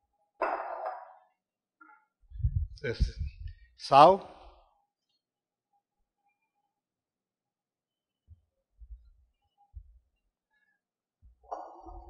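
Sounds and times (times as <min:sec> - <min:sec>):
faint low thumps: 0:02.3 - 0:03.7.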